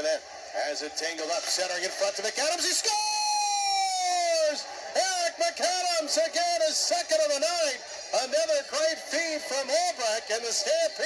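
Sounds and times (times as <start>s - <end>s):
announcer shouting: 2.6s - 11.0s.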